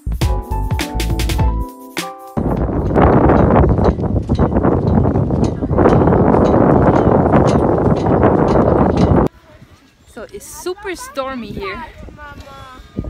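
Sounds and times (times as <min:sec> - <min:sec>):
strong wind buffeting microphone: 0:02.4 - 0:13.0.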